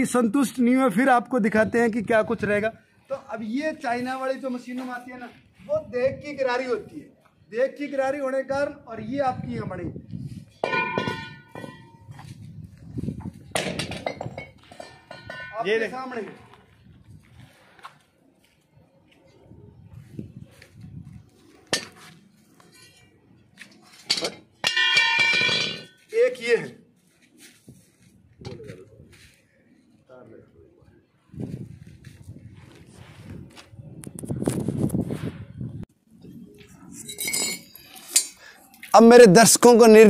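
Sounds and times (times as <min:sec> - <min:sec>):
metal pieces clinking on concrete: 0:23.9 - 0:26.0, 0:36.9 - 0:38.4.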